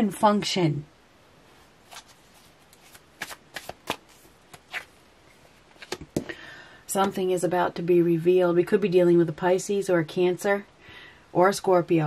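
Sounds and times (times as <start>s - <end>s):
cards being shuffled: 1.8s - 5.0s, 5.7s - 6.2s
sharp card snaps: 2.8s - 4.9s.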